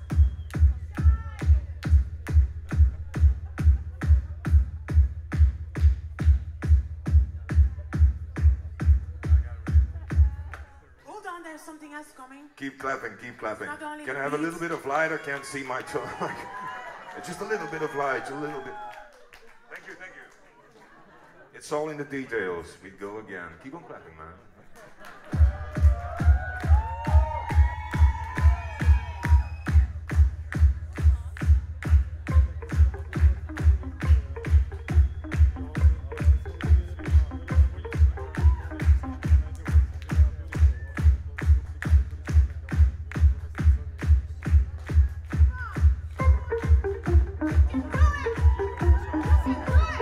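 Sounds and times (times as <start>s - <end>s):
steady kick drum beat: 0.0s - 10.8s, 25.3s - 50.0s
electronic dance music: 0.0s - 10.9s, 13.2s - 18.7s, 25.2s - 50.0s.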